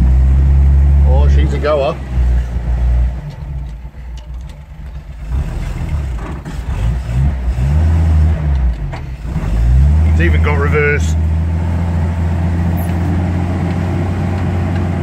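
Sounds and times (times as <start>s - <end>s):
car engine running unevenly: 0.0s - 7.7s.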